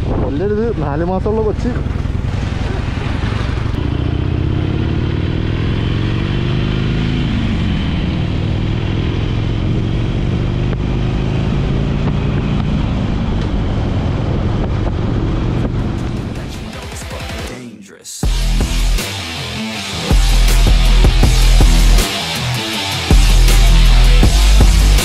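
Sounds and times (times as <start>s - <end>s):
motorcycle engine running: 0.0s - 17.4s, 18.2s - 25.0s.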